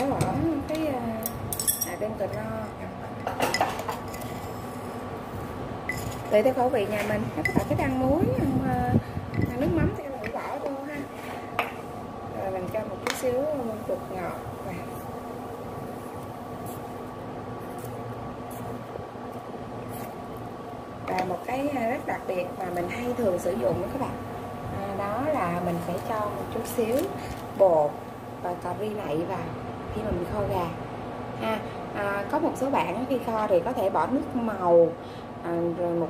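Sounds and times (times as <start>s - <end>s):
pot of broth humming and hissing: 0.0s - 36.0s
spoon clinking against container: 1.5s - 2.0s, 5.9s - 6.3s.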